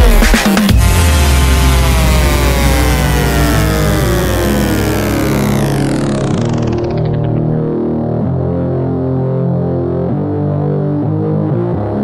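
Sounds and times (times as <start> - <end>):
electronic dance music: 0.0 - 8.1
deep bass: 0.0 - 12.0
synth sweep gliding down: 0.7 - 8.9.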